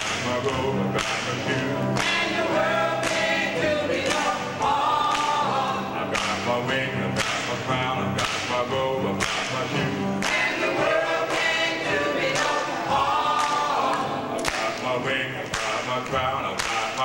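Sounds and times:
hand claps: 0.0s - 6.6s, 7.2s - 11.5s, 12.2s - 12.7s, 13.3s - 17.0s
choir singing a cappella: 0.0s - 17.0s.

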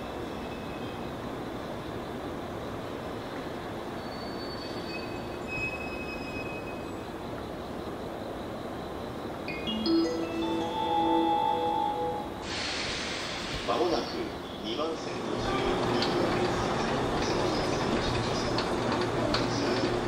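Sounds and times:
rising multi-note chime: 9.5s - 12.4s
electric train running: 14.9s - 20.0s.

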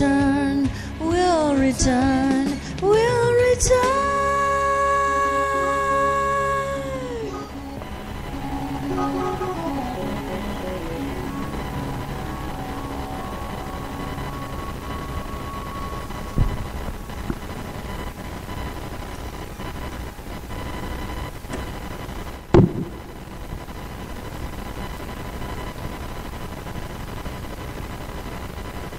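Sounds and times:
karaoke backing track: 0.0s - 18.2s
background hiss: 3.9s - 28.9s
faint high tone: 4.7s - 18.6s.

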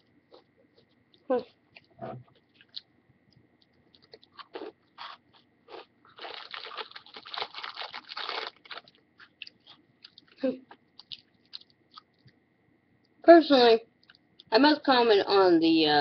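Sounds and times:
cookie crunching and chewing: 0.0s - 12.4s, 14.0s - 14.5s.

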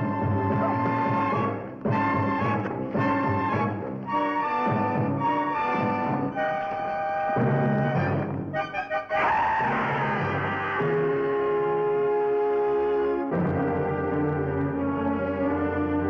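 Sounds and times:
orchestral brass chords: 0.0s - 16.0s
timpani: 0.0s - 16.0s.

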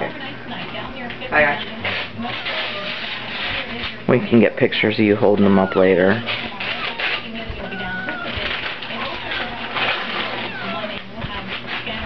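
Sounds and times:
television voice talking: 0.0s - 12.0s
wrapping paper crinkling and tearing: 1.8s - 4.4s, 5.7s - 12.0s.

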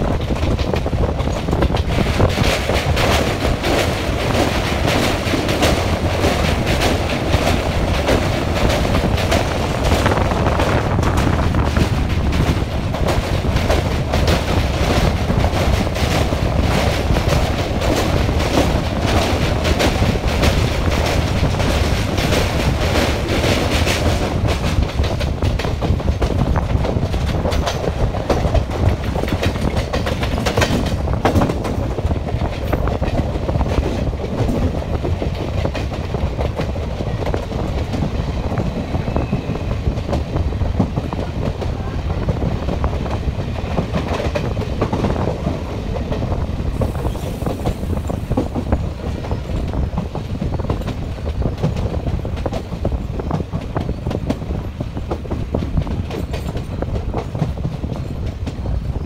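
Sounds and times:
train rumble: 0.0s - 59.0s
train wheels clattering on rails: 0.0s - 59.0s.

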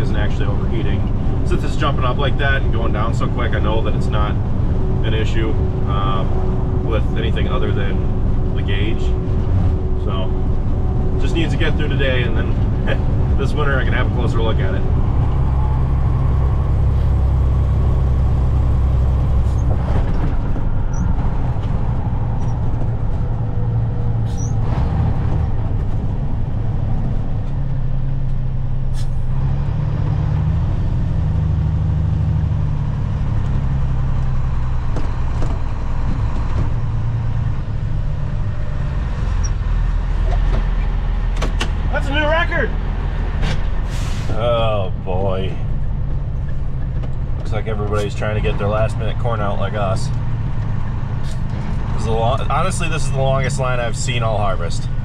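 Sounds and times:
truck engine running inside cab: 0.0s - 55.0s.

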